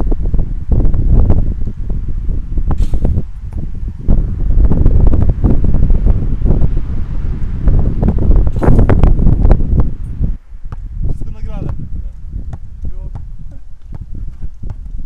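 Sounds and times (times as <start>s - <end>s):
strong wind buffeting microphone: 0.0s - 15.0s.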